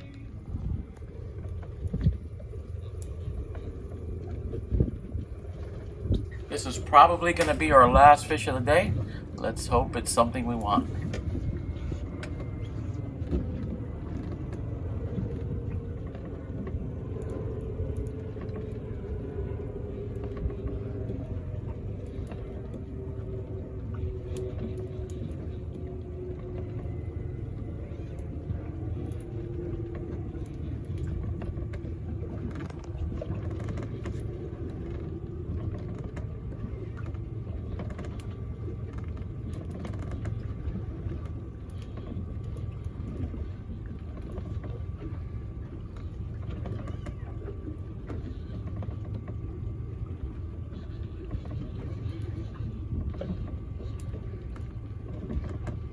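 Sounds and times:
reel motor whine: 0:00.0 - 0:55.9
steady low rumble: 0:00.0 - 0:55.9.

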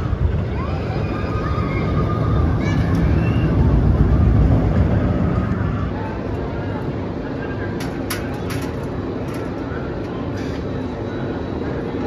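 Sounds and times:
roller coaster rumbling on track: 0:00.0 - 0:12.0.

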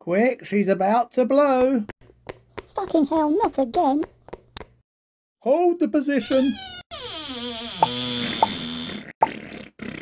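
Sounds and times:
comic fart sound effect: 0:07.6 - 0:10.0.

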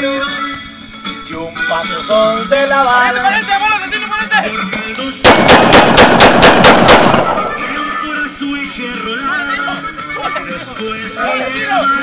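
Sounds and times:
pistol shots echoing: 0:05.2 - 0:07.9.

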